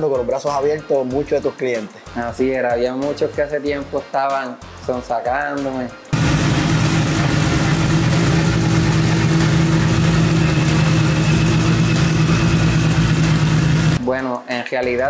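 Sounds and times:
race car engine idling: 0:06.2 - 0:14.0.

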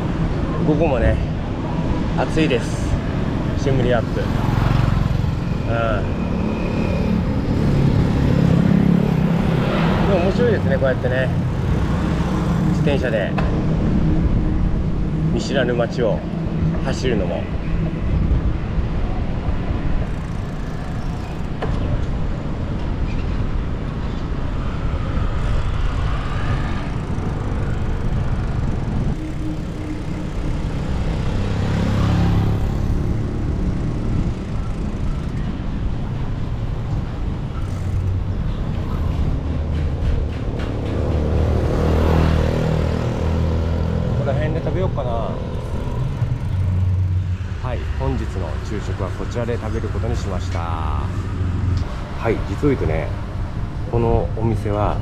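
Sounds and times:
cars and motorbikes passing: 0:00.0 - 0:55.0
traffic rumble: 0:00.0 - 0:55.0.

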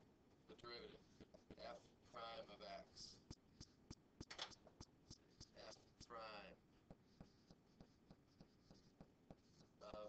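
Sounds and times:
stylus scratching on tablet: 0:00.6 - 0:10.0.

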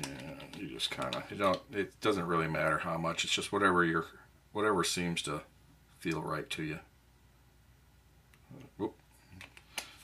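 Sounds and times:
plastic dropper bottle handling: 0:00.0 - 0:01.8.

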